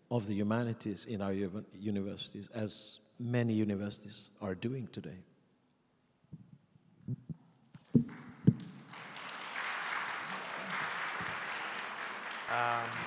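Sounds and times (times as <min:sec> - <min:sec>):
audience applauding: 0:07.9 - 0:13.0.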